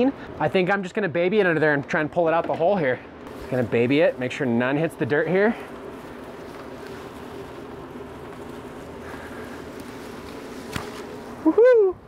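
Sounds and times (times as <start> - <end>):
electric fan humming: 0.0 - 12.0.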